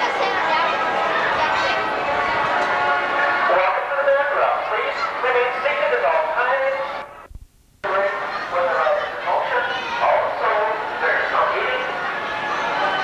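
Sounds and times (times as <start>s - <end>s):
voices: 0.0s - 7.2s, 7.8s - 13.0s.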